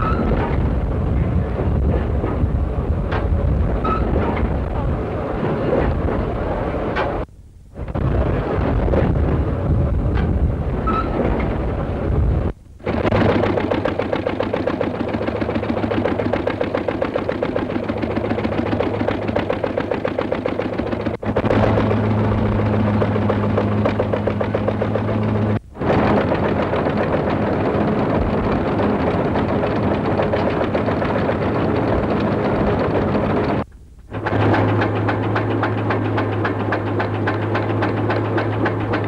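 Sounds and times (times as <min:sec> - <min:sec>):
machinery clattering: 0:07.9 - 0:39.0.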